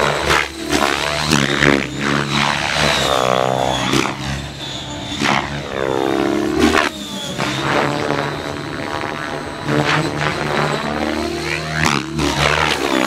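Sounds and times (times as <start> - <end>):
helicopter rotor sweeping in pitch: 0.0 - 13.0
sharp whooshes of rotor blades: 0.0 - 13.0
thin high motor whine: 0.0 - 13.0.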